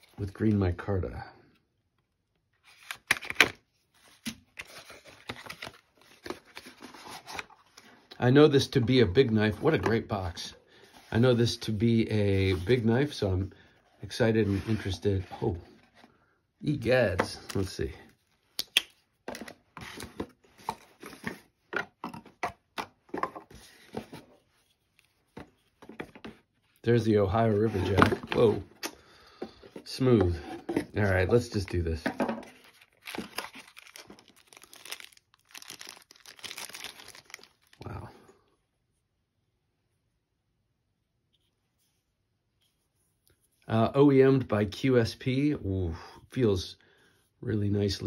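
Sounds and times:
cardboard boxes handled: 19.2 - 26.6, 27.4 - 28.8.

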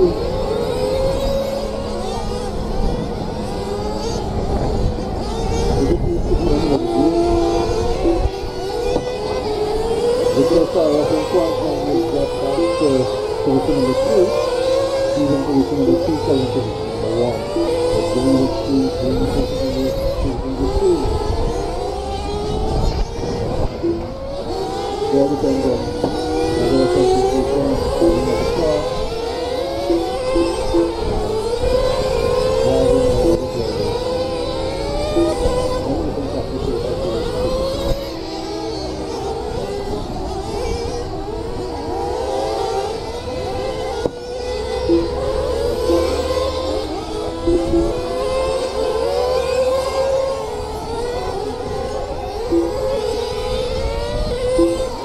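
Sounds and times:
remote control car motors whining: 0.0 - 55.0.

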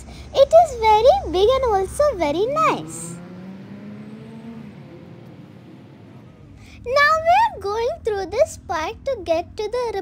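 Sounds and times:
faint car accelerating: 0.0 - 10.0.

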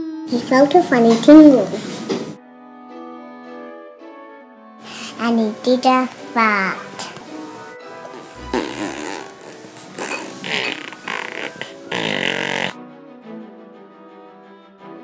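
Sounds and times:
background music: 0.0 - 15.0
rough fart noises: 7.9 - 12.8.

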